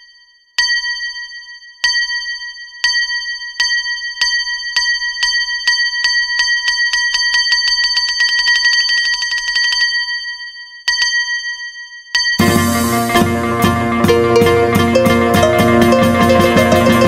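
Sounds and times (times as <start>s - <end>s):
small bell strikes: 0.0s - 13.2s.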